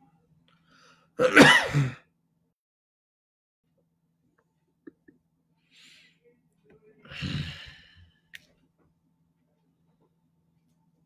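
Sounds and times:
man sighing: 7.1s - 8.0s.

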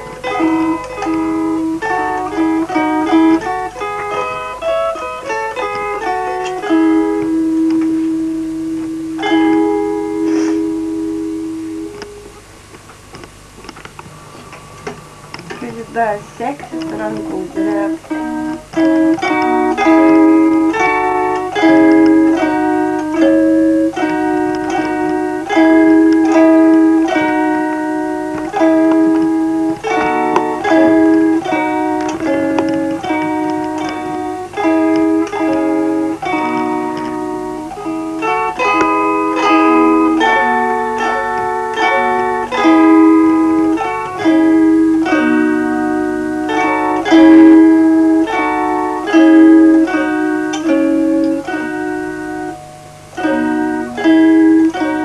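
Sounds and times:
faint low hum: 0.0s - 55.0s
plucked zither folk melody: 0.0s - 55.0s.

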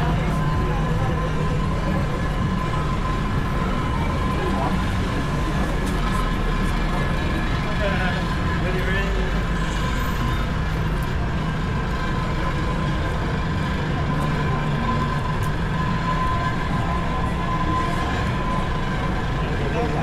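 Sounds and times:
passers-by talking: 0.0s - 20.0s
road traffic rumble: 0.0s - 20.0s.

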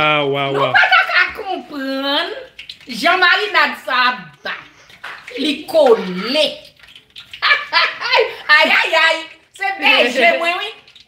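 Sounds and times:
woman laughing: 0.6s - 1.4s, 7.4s - 9.0s.

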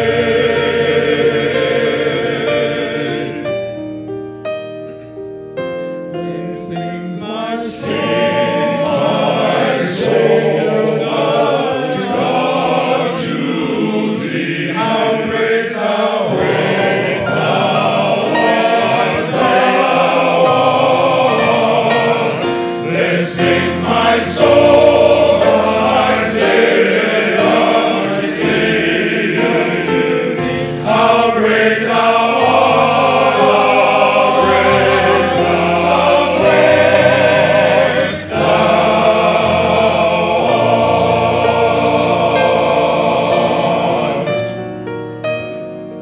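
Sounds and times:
men's chorus singing gospel: 0.0s - 3.8s, 6.1s - 44.7s.

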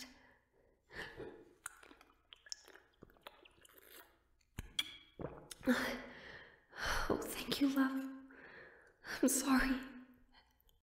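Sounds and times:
mouth clicks: 4.6s - 5.7s
woman breathing close-up: 5.9s - 7.1s.

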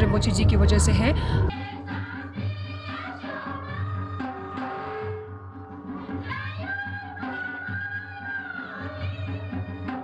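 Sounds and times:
women singing together: 0.1s - 4.7s.

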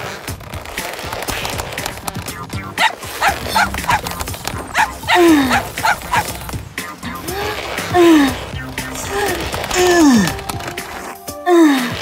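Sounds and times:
cartoon background music: 1.4s - 12.0s
robot puppy yipping: 2.3s - 6.4s.

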